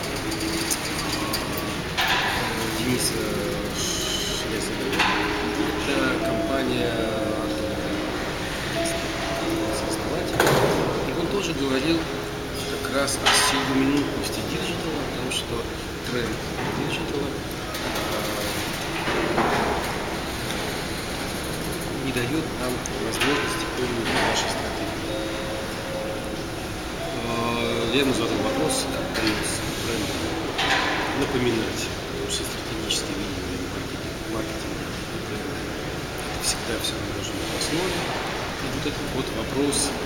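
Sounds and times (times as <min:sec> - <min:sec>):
faint music: 0:00.0 - 0:40.0
low rumble and hiss: 0:00.0 - 0:40.0.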